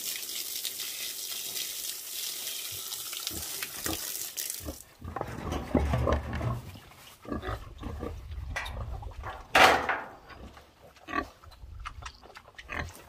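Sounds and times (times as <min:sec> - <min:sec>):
water pouring onto rocks: 0:00.0 - 0:04.8
pig grunting: 0:04.7 - 0:09.2.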